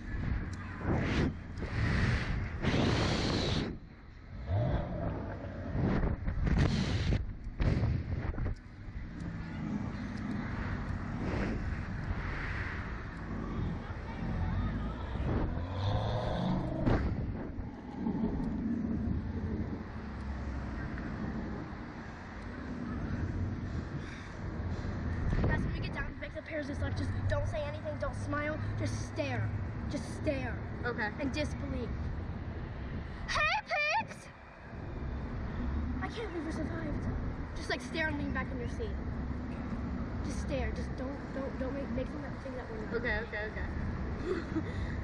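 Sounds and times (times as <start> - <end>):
wind rushing over microphone: 0.0 - 33.3.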